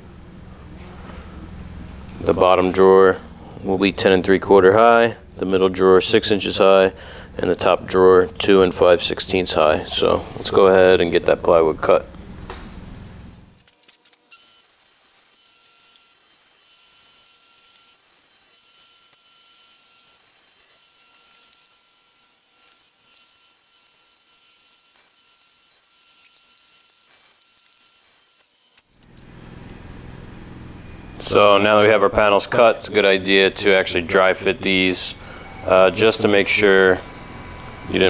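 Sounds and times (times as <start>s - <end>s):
table saw cutting plywood: 2.1s - 12.0s, 13.4s - 38.0s.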